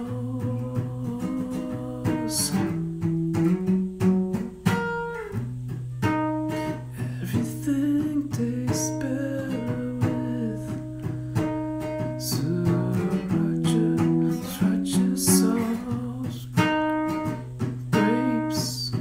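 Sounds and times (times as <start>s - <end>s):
person singing: 0.0s - 3.1s, 6.5s - 19.0s
acoustic guitar strumming: 0.0s - 19.0s.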